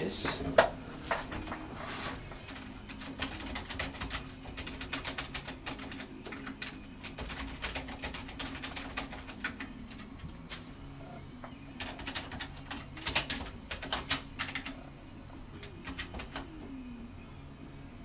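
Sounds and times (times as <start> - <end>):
steady low hum: 0.0 - 18.0
typing on computer keyboard: 2.4 - 10.6, 11.8 - 14.8, 15.6 - 16.5.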